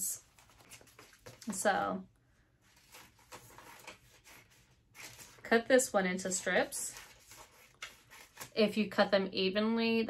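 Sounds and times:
faint paper rustles and clicks: 0.2s - 1.7s, 2.7s - 5.5s, 6.3s - 8.7s.

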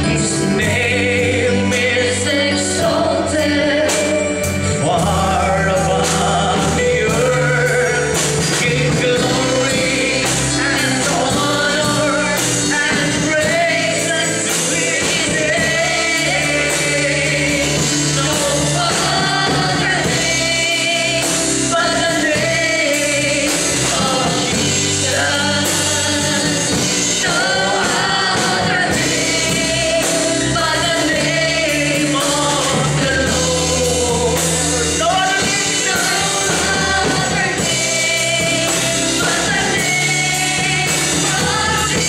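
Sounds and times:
instrumental backing: 0.0s - 42.0s
man singing into microphone: 0.0s - 42.0s.

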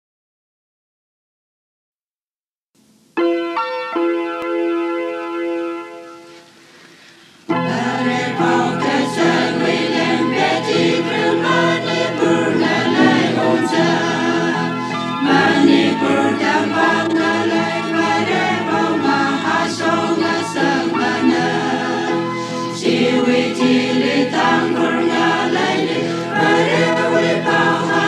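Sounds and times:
choir singing gospel song: 7.5s - 28.0s.

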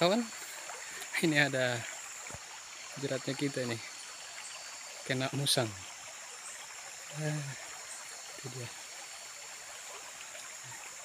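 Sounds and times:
rushing hiss: 7.1s - 10.0s.

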